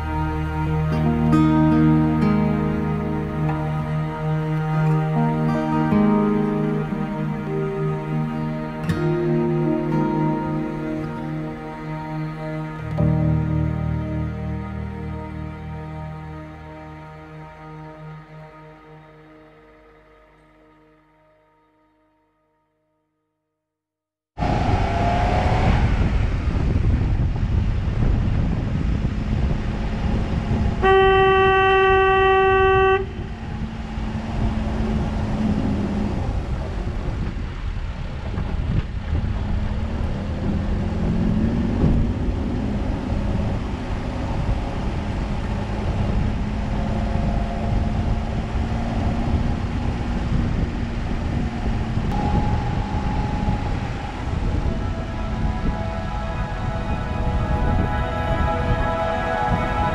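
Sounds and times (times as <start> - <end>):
car engine and tyre rumble: 0.0 - 20.4, 24.4 - 59.9
car horn blast: 30.8 - 33.8, 52.1 - 59.9.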